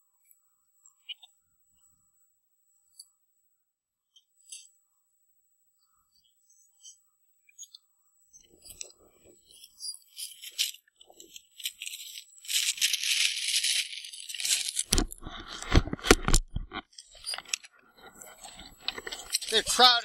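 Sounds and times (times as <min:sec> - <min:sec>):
gear clicks and rattles: 0:10.2 - 0:20.0.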